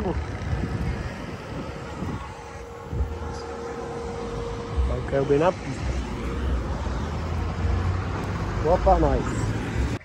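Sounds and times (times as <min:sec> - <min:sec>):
traffic engine hum: 0:00.0 - 0:10.0.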